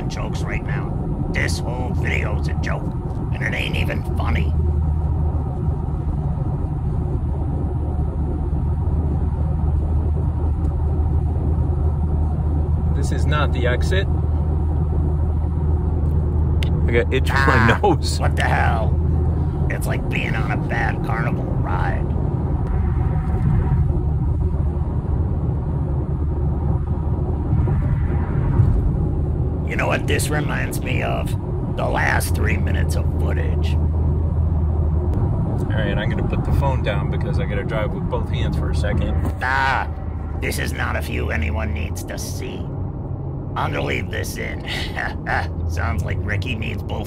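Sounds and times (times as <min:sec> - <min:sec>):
road and wind noise in car cabin: 0:00.0 - 0:47.0
wind noise: 0:19.0 - 0:32.8.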